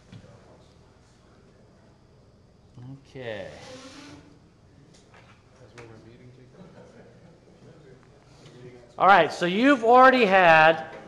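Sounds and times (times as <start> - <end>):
faint steady buzz: 0.0 - 11.0.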